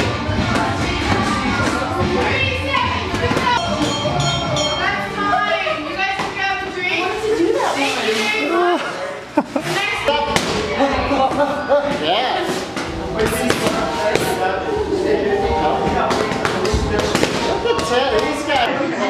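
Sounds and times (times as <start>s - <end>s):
chatter of voices: 0.0s - 19.0s.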